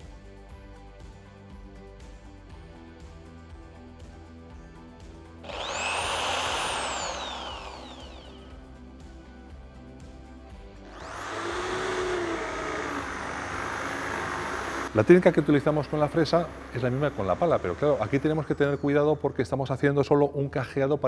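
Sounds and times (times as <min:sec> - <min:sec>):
background music: 0:00.0 - 0:21.0
electric drill motor whine: 0:05.4 - 0:08.7, 0:10.8 - 0:15.0
drill bit cutting wood: 0:05.5 - 0:08.5, 0:10.9 - 0:15.0.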